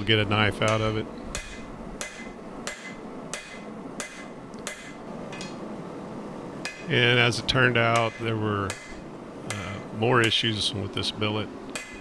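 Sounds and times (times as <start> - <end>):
hammer striking hot steel on anvil: 0.6 - 5.6, 6.6 - 7.0, 7.8 - 10.5, 11.7 - 12.0.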